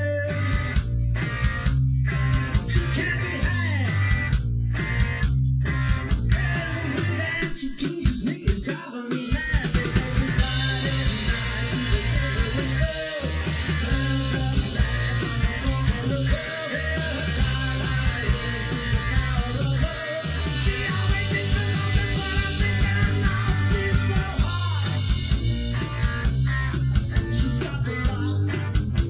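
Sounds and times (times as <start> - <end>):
rock band playing: 0.0 - 29.0.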